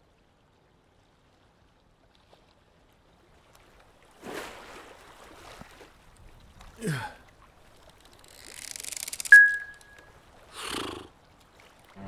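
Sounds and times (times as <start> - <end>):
stopwatch click with ringing tone: 9.1 - 10.1.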